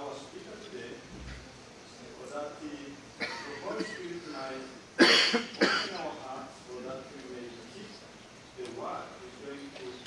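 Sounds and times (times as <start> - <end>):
person coughing sharply: 3.2 - 4.1, 5.0 - 6.0.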